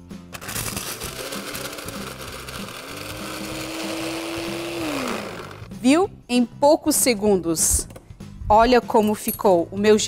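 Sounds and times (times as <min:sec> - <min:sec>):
ice rattling in blender jar: 0:00.3 - 0:05.4
blender motor whine: 0:00.3 - 0:05.7.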